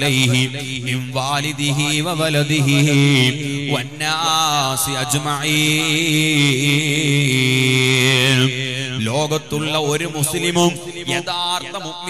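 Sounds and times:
man chanting over loudspeaker: 0:00.0 - 0:12.0.

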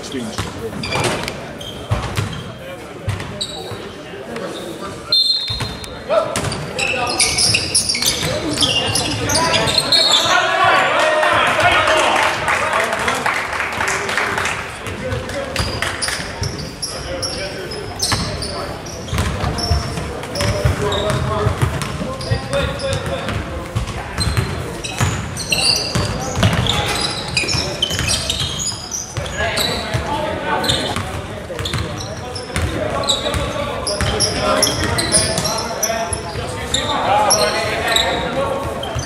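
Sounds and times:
sneaker squeaks: 0:00.0 - 0:10.8, 0:14.8 - 0:39.0.

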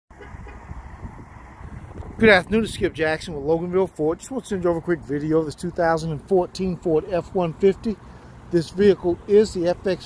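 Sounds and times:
outdoor background rumble: 0:00.1 - 0:10.0.

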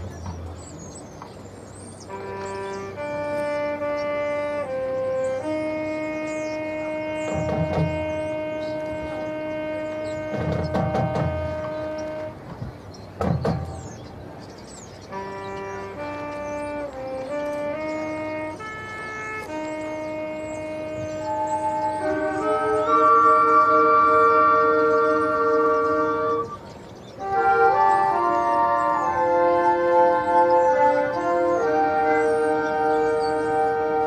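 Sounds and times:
marching band sustained note: 0:00.0 - 0:34.0.

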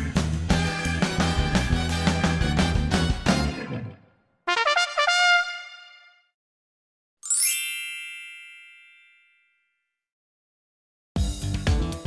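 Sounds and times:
bright chime ding: 0:07.2 - 0:09.7.

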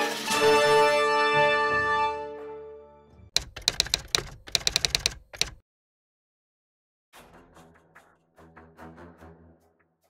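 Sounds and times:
keyboard typing clicks: 0:03.4 - 0:05.6.

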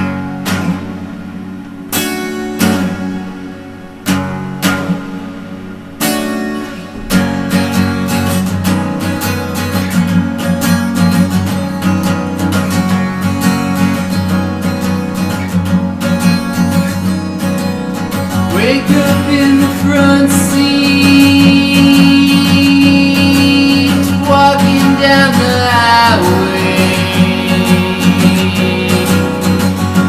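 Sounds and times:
acoustic guitar strumming: 0:00.0 - 0:30.0.

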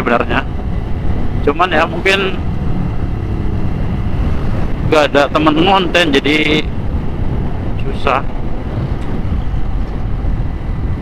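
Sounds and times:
road noise: 0:00.0 - 0:11.0
wind buffeting microphone: 0:00.0 - 0:11.0.

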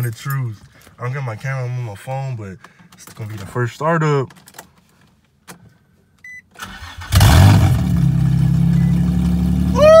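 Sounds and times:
car engine starting and idling: 0:06.5 - 0:10.0.

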